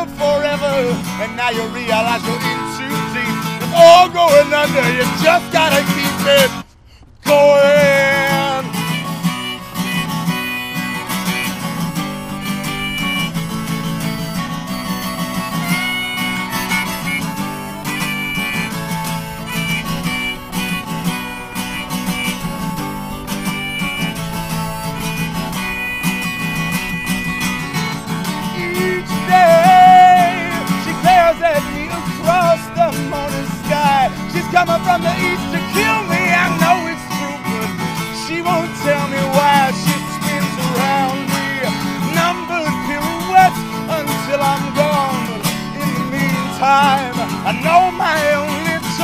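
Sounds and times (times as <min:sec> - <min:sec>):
acoustic guitar strumming: 0:00.0 - 0:49.0
harmonica solo: 0:00.0 - 0:49.0.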